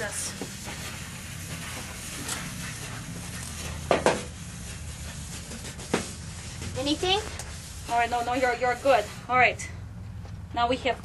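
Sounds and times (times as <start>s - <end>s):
handheld brush motor hum: 0.0s - 9.5s.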